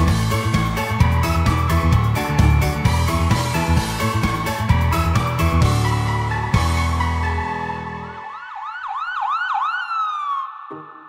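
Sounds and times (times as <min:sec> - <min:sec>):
ambulance siren whoops: 0:00.4 - 0:11.0.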